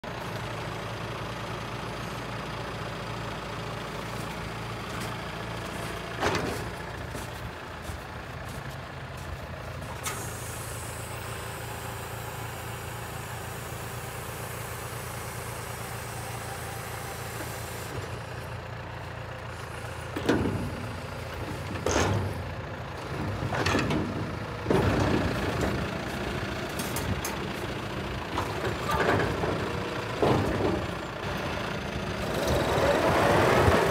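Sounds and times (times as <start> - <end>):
tractor engine running: 0.0 - 33.9
clunks and bangs: 4.9 - 8.7, 20.0 - 31.2.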